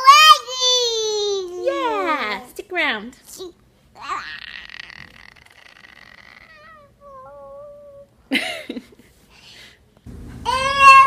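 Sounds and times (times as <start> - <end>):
toddler whiny vocal sounds: 4.0 - 8.1
toddler squealing: 4.1 - 7.5
baby shouting: 10.5 - 11.0.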